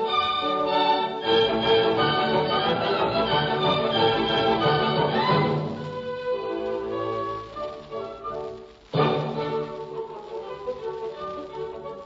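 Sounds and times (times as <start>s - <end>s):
orchestral music on old radio: 0.0s - 12.0s.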